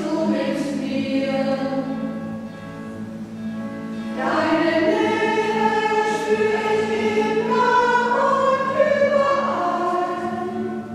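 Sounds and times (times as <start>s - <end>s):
choir singing a hymn: 0.0s - 2.2s, 3.9s - 10.9s.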